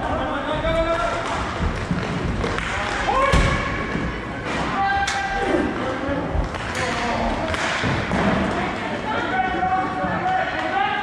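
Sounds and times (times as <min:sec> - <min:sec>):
roller hockey thuds and knocks: 0:01.3 - 0:04.8.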